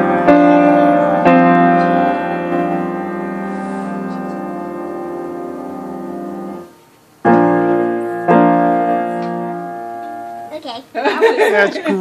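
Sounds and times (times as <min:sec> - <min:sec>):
grand piano chords: 0:00.0 - 0:10.6.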